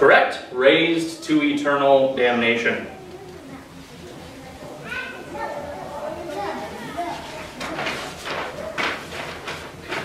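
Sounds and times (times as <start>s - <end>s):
faint voices: 0.7s - 10.0s.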